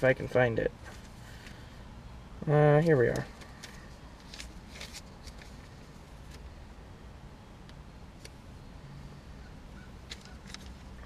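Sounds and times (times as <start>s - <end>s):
paper handling clicks: 10.0s - 11.0s.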